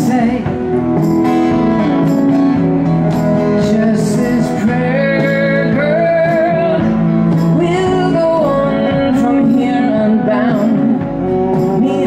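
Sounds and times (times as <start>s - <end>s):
strummed acoustic guitar: 0.0s - 12.0s
upright bass: 0.0s - 12.0s.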